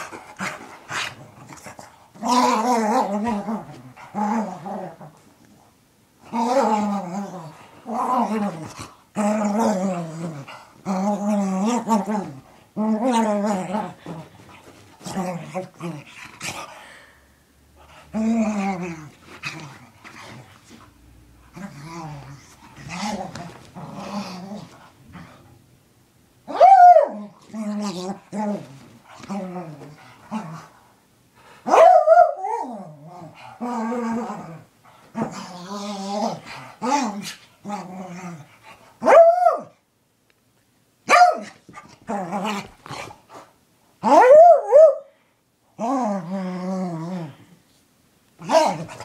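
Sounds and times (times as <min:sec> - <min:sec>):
small dog growling: 0:32.6 - 0:38.5
short high dog barks: 0:41.1 - 0:41.5.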